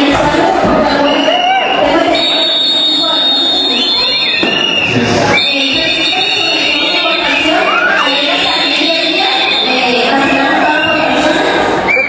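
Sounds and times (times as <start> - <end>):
woman speaking over pa system: 5.4 - 11.6.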